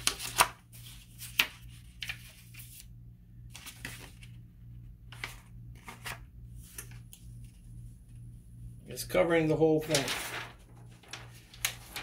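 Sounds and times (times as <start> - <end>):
steady low hum: 0.8 - 12.0
paper rustling and sliding: 3.5 - 4.4, 5.1 - 7.7, 9.6 - 12.0.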